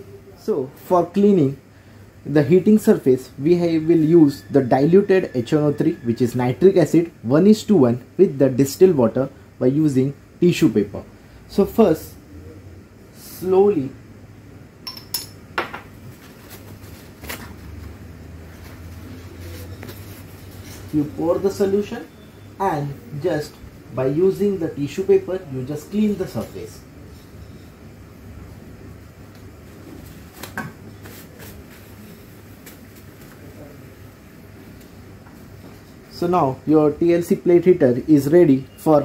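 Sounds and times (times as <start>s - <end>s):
low background hum: 0.0s - 39.0s
glass flask clinking: 14.8s - 15.9s
tissue paper wiping glass: 16.2s - 21.7s, 31.0s - 33.5s.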